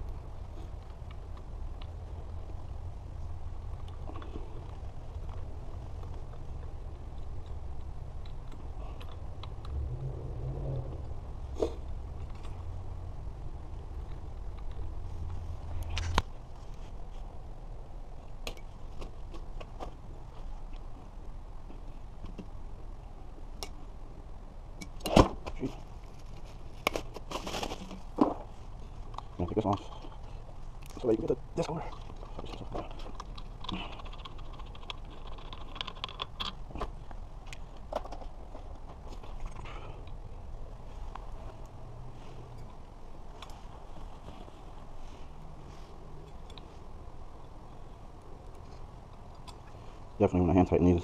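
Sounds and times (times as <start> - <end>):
low steady hum: 0.0 - 51.0.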